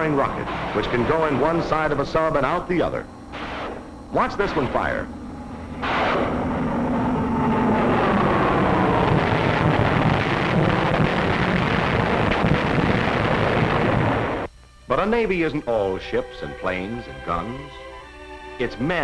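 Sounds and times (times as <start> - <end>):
rockets firing with falling whine: 0.0 - 14.6.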